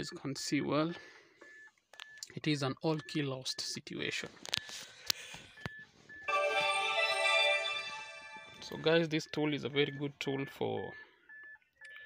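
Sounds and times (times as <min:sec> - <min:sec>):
device startup chime: 0:06.3 - 0:09.0.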